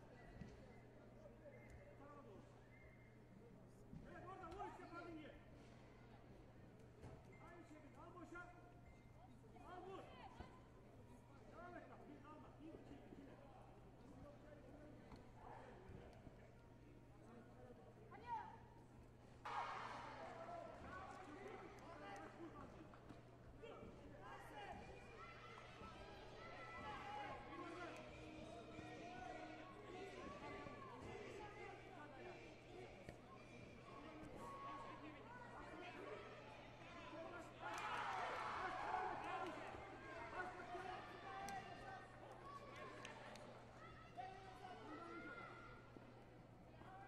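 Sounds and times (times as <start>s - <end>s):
voices echoing in a hall: 0.0s - 47.0s.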